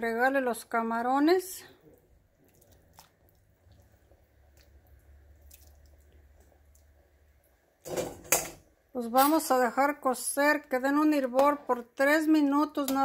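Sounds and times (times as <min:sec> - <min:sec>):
faint drips: 0:01.6 - 0:07.7
small wet plops: 0:01.8 - 0:07.5.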